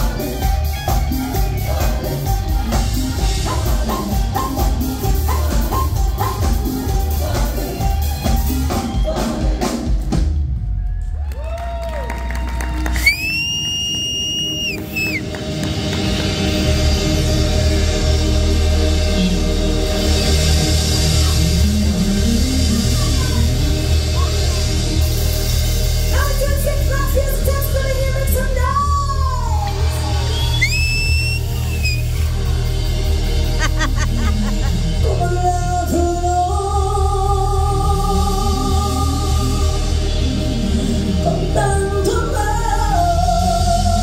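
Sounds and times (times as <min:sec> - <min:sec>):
live band music with heavy bass: 0:00.0 - 0:10.9, 0:12.1 - 0:44.0
shrill whistle: 0:13.0 - 0:15.2, 0:30.2 - 0:32.2.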